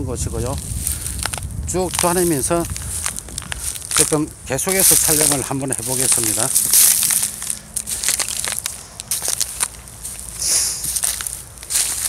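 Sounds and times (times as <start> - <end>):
footsteps through dry reeds: 0.3 - 12.0.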